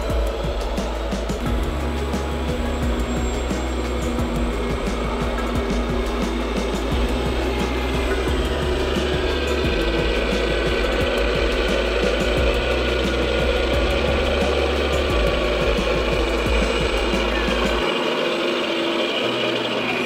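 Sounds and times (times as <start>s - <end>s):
electric motors and propellers whirring: 0.0s - 20.0s.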